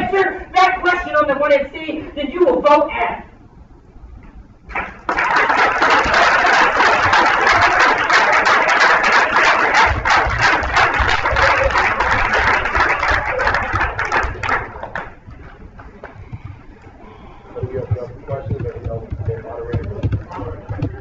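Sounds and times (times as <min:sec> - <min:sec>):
audience applauding: 0:04.7 - 0:16.2
low thuds: 0:17.6 - 0:21.0.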